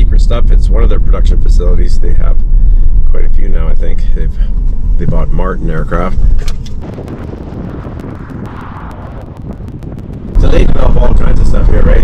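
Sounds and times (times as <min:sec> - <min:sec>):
vehicle road and wind noise: 0:00.0 - 0:12.0.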